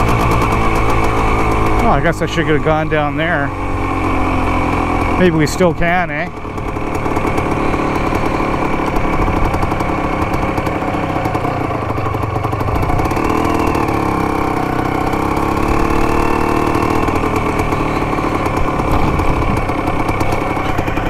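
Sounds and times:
motorcycle engine idling: 0:00.0 - 0:21.0.

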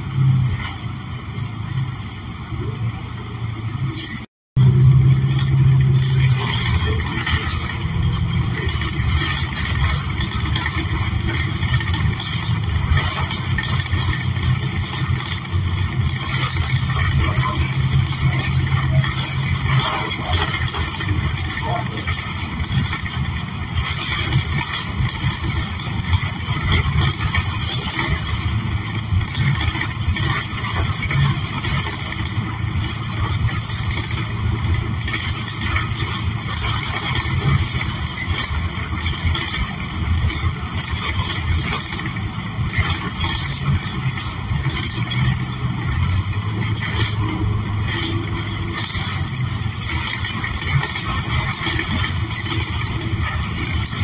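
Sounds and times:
bus engine rumble: 0:00.0 - 0:54.0
road noise: 0:00.0 - 0:54.0.

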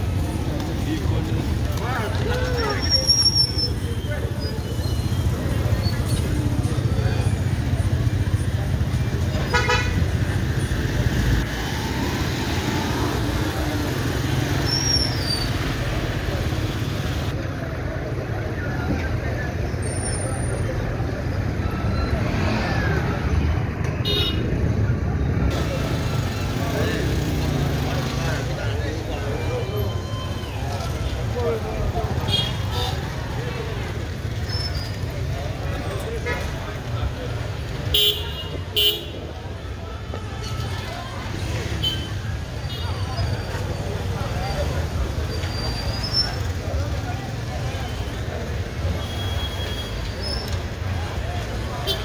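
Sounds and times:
people talking: 0:00.0 - 0:09.5, 0:15.6 - 0:23.6, 0:24.9 - 0:52.0
motorcycle and car engines rumbling: 0:00.0 - 0:52.0.

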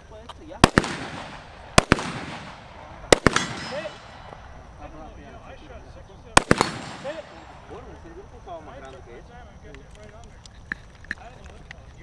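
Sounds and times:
rifle shots with echo: 0:00.6 - 0:04.6, 0:06.4 - 0:07.8.

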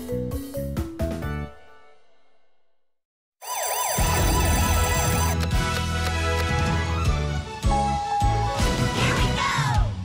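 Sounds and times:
emergency siren sound effect: 0:03.4 - 0:05.4
song: 0:03.4 - 0:05.5.

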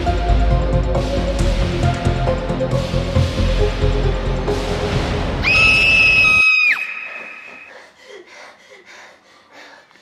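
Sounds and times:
soundtrack music: 0:00.0 - 0:05.5
girl screaming: 0:05.4 - 0:07.7.

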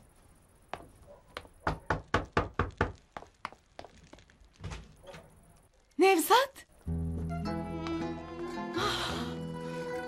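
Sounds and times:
knocking on wooden door: 0:01.6 - 0:03.0.

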